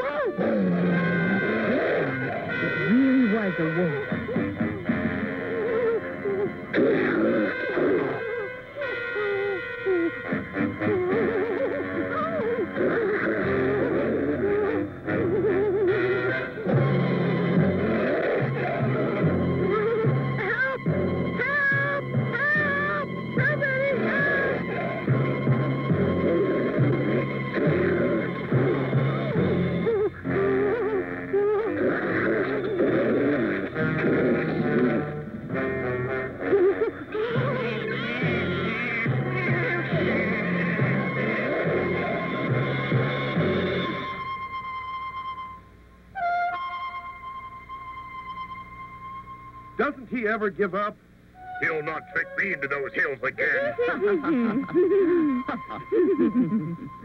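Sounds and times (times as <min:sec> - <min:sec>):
cartoon soundtrack music: 0:00.0 - 0:45.6, 0:46.2 - 0:57.0.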